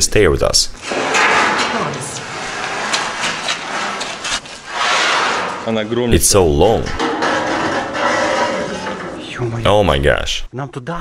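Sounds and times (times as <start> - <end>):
metal scraping on concrete: 0.8 - 10.1
metal knocks and clanks: 0.8 - 10.2.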